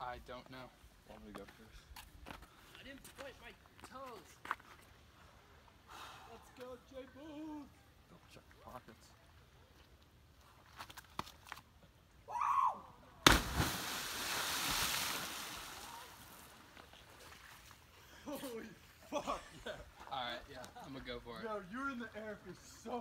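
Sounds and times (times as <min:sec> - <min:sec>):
body smacking water: 0:13.3 - 0:15.8
rushing splash: 0:13.3 - 0:16.6.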